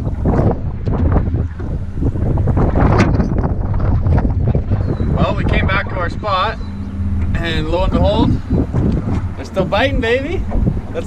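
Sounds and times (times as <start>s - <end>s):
outboard motor droning: 0.0s - 11.0s.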